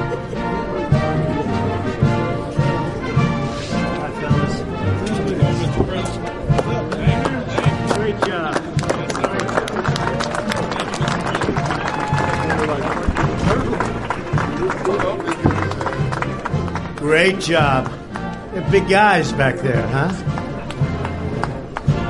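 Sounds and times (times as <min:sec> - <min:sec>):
brass band music: 0:00.0 - 0:22.0
crowd: 0:00.0 - 0:22.0.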